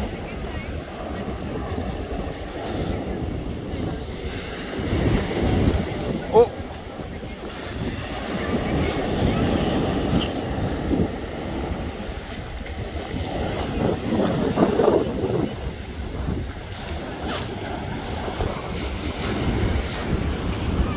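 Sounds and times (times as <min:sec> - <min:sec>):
waves breaking on shingle beach: 0:00.0 - 0:20.9
wind buffeting microphone: 0:00.0 - 0:20.9.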